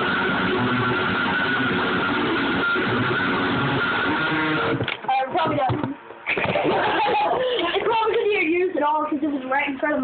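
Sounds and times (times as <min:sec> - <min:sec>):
loud electric guitar chords: 0:00.0 - 0:04.9.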